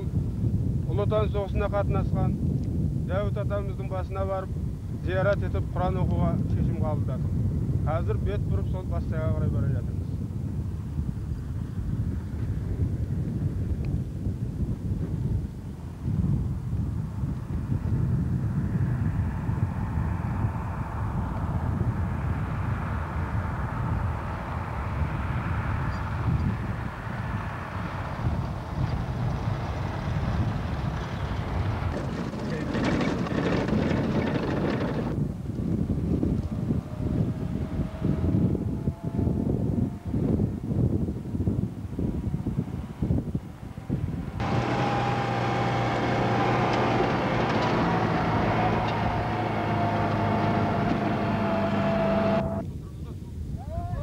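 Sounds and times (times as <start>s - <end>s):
wind buffeting microphone: 0.0s - 54.0s
truck engine driving: 17.0s - 52.6s.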